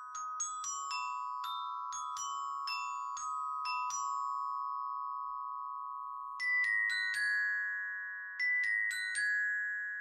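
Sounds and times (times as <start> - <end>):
glockenspiel bars ringing: 0.0 - 10.0.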